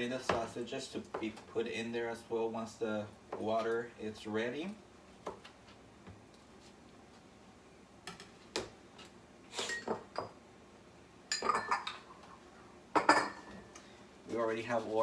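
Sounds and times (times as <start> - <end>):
knife and dishes clattering: 11.3 - 12.0, 13.0 - 13.5.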